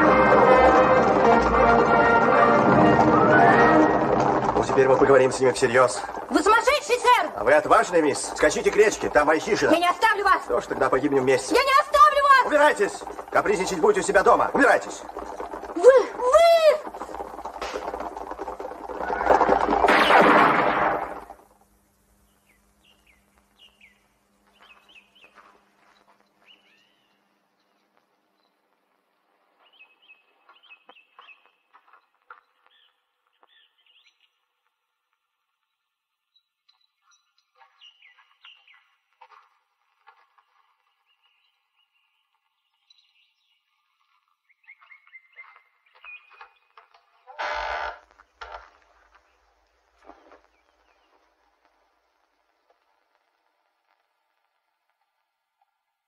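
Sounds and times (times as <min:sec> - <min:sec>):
birds chirping: 0:03.3 - 0:19.8, 0:22.1 - 0:28.7, 0:29.6 - 0:34.5, 0:36.2 - 0:39.1, 0:40.3 - 0:47.5.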